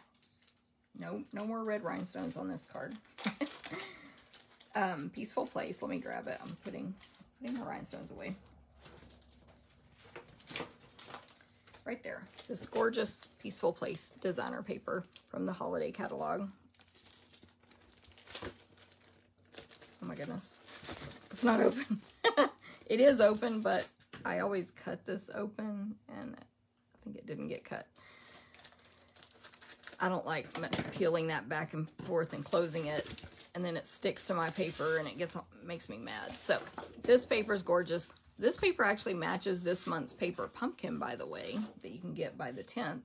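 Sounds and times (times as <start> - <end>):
cellophane crinkling: 0.0 - 24.0, 28.0 - 31.2, 32.0 - 35.3
paper and plastic packaging rustling: 0.0 - 24.1, 28.0 - 31.3, 31.9 - 35.4.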